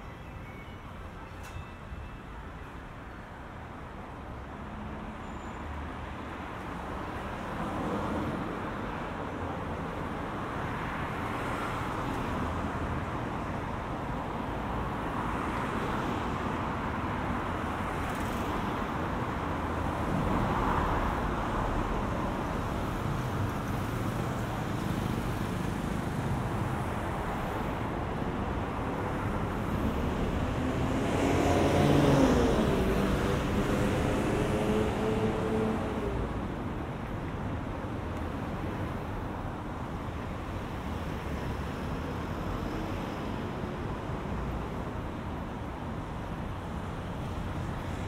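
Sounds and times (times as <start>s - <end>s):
road traffic with cars passing: 0.0s - 48.0s.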